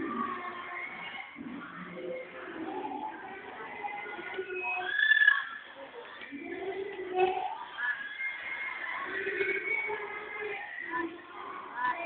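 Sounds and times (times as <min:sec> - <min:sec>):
young people calling and chattering: 0:00.0 - 0:12.0.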